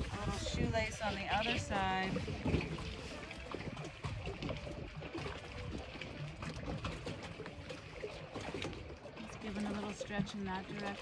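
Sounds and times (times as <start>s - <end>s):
small waves lapping against dock: 0.0s - 11.0s.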